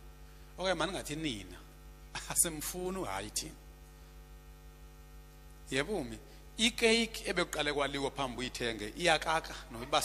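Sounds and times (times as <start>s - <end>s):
electrical mains hum: 0.0s - 10.0s
man speaking: 0.6s - 3.6s, 5.7s - 10.0s.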